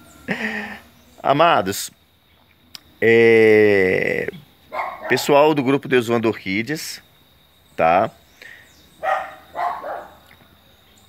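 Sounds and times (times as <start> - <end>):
dog barking: 4.7 - 5.4, 9.0 - 10.3.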